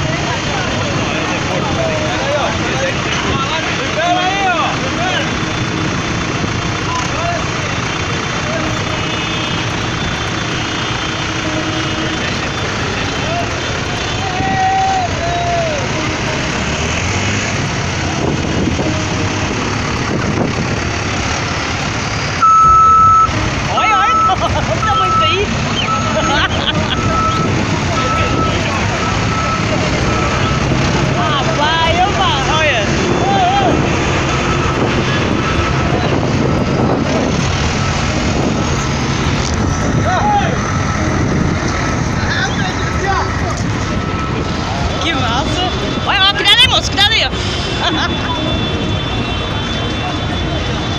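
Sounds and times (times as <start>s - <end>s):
crowd voices: 0.0s - 50.9s
tractor engines running: 0.0s - 50.9s
loud horn blast: 8.0s - 20.9s, 22.4s - 50.9s
short beeps: 22.4s - 30.7s.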